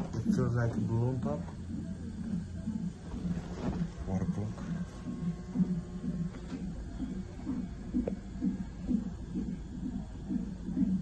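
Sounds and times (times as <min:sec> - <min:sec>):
hospital equipment hum: 0:00.0 - 0:11.0
soft rhythmic pulsing: 0:00.0 - 0:11.0.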